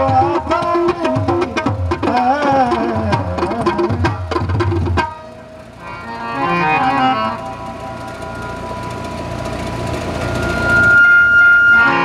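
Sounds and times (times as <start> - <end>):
harmonium and tabla music: 0.0 - 12.0
sound system hum: 0.0 - 12.0
steady high tone through speakers: 5.1 - 12.0.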